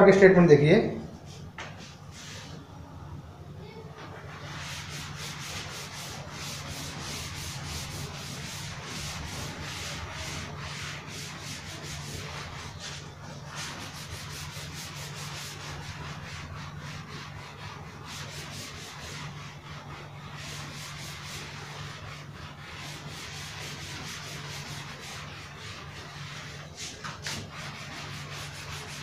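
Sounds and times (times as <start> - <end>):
duster rubbing chalk off blackboard: 1.6 - 2.6, 4.0 - 29.0.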